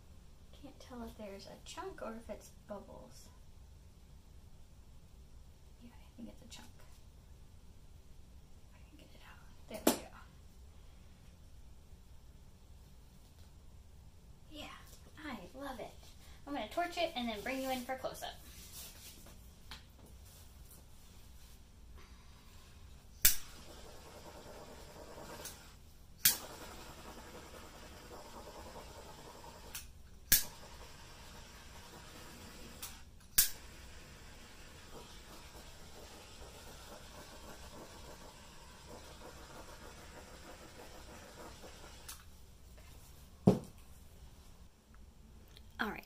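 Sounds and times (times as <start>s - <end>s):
background hiss: 0.0s - 46.0s.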